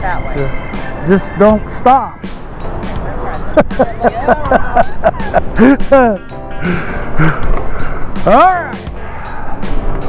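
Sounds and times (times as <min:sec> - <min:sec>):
background music: 0:00.0 - 0:10.0
person laughing: 0:03.5 - 0:07.5.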